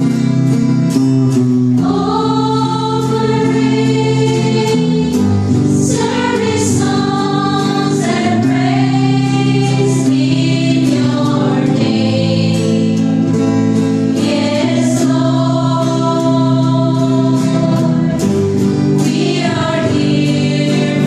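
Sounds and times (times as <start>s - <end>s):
guitar accompaniment: 0.0s - 21.0s
choir singing in unison: 1.8s - 21.0s.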